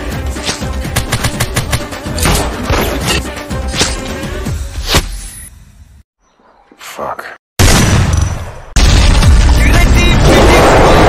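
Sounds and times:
rapid gunfire: 0.9 - 1.9.

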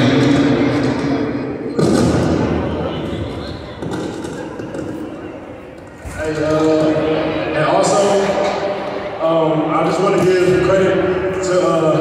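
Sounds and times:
voice echoing in a gym: 0.0 - 12.0.

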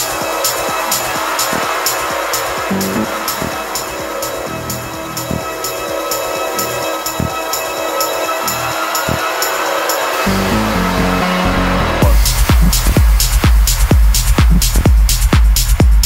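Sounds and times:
synth drone: 0.0 - 13.8
deep bass line: 2.6 - 7.6, 8.2 - 9.3, 10.2 - 16.0.

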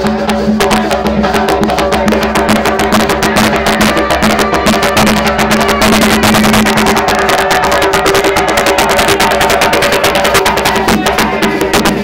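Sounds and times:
hand drums beating fast rhythm: 0.0 - 12.0
held notes: 0.0 - 12.0.

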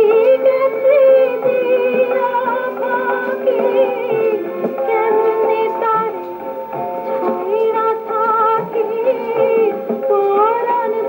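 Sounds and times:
instrumental accompaniment: 0.0 - 11.0
woman singing with vibrato: 0.0 - 11.0.

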